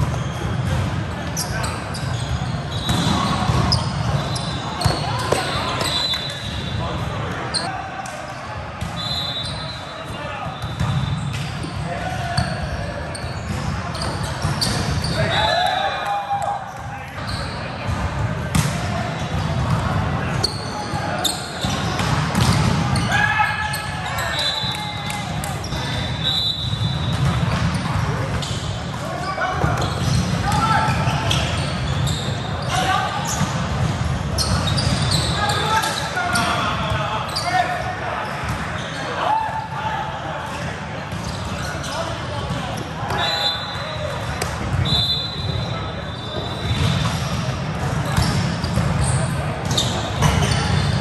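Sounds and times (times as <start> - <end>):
volleyballs struck and bouncing: 0.0 - 2.0, 2.6 - 8.2, 16.8 - 23.2, 26.7 - 32.0, 45.5 - 51.0
players' voices and calls: 0.0 - 51.0.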